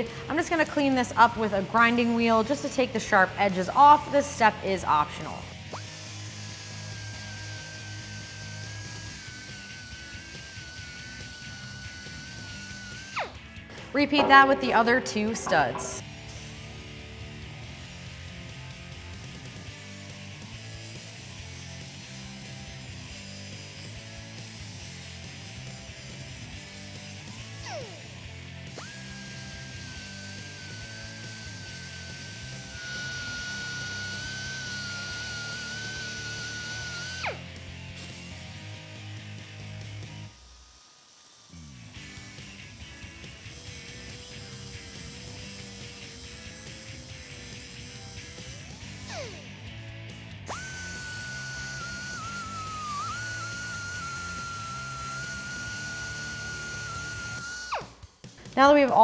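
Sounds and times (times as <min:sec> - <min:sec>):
cutoff wheel whining: 0:05.1 - 0:14.1, 0:28.7 - 0:37.6, 0:41.5 - 0:49.8, 0:50.4 - 0:58.0
background music: 0:13.2 - 0:22.8, 0:57.8 - 0:59.0.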